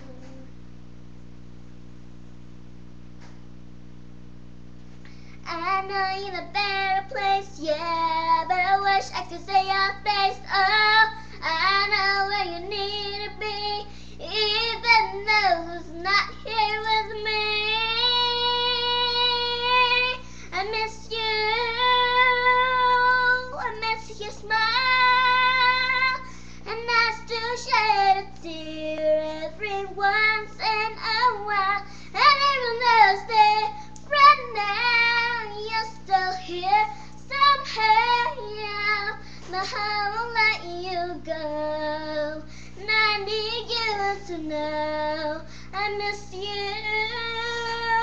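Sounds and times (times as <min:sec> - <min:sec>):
girl singing: 0:00.0 - 0:00.6, 0:05.1 - 0:48.0.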